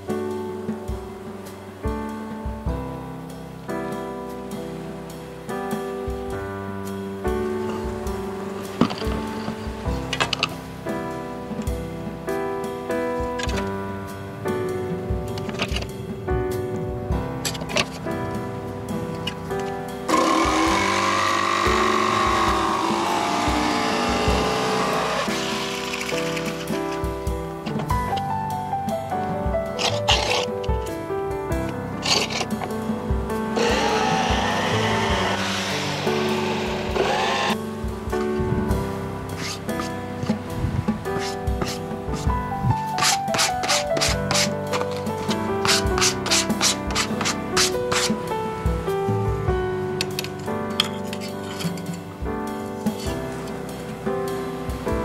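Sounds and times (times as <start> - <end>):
background music: 0.0 - 55.0
power saw cutting plywood: 20.1 - 27.0, 32.0 - 32.5, 33.6 - 37.6, 43.0 - 48.2
sandpaper sanding wood: 20.1 - 27.0, 33.6 - 37.6, 39.4 - 39.9, 41.1 - 48.2.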